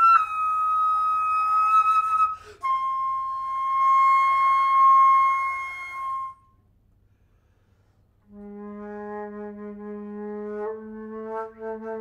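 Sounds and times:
flute holding a high note: 0.0 - 6.6.

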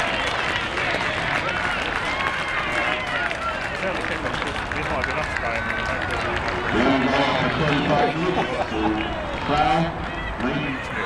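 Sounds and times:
outdoor noise: 0.0 - 11.0
people shouting and calling out: 6.6 - 11.0.

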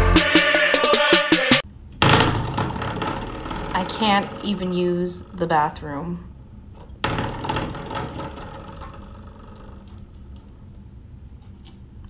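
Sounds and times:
faint room hum: 1.6 - 12.0.

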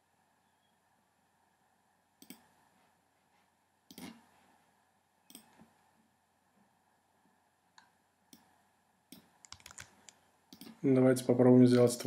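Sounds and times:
computer mouse and keyboard clicks: 9.1 - 10.8.

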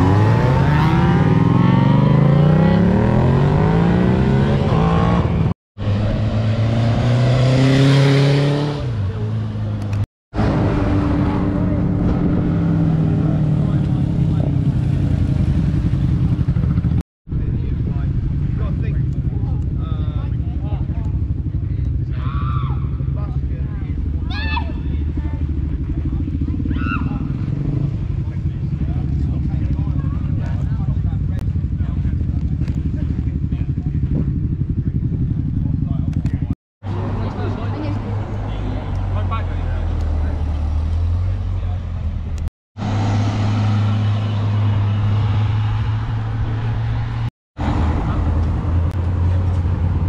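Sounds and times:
voices: 17.3 - 42.2
cars driving slowly past: 36.8 - 50.0.

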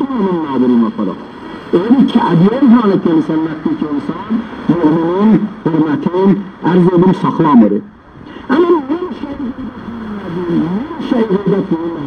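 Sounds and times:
man's voice on radio: 0.0 - 12.0
radio static noise: 0.0 - 12.0.

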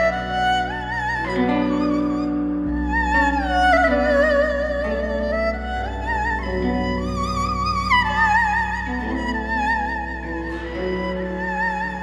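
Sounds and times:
slow melody with vibrato: 0.0 - 12.0.

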